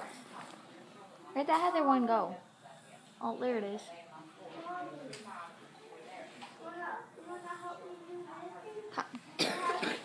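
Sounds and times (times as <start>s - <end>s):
faint speech: 0.0s - 10.0s.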